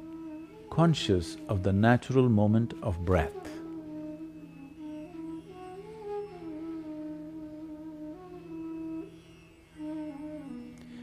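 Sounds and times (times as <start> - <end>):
held flute-like note: 0.0 - 11.0.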